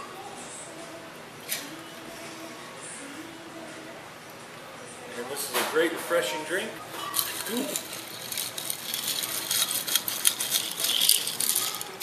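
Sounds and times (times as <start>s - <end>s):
spoon stirring ice in glass: 7.0s - 12.0s.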